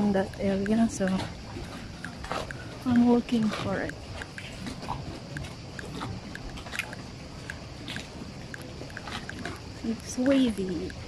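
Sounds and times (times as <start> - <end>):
person speaking: 0.0 - 1.3, 2.8 - 3.9, 9.8 - 11.0
steady background hiss: 0.0 - 11.0.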